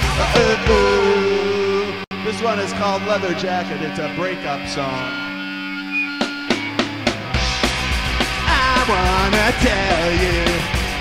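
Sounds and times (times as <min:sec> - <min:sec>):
electric guitar notes ringing: 0:00.1 - 0:08.2.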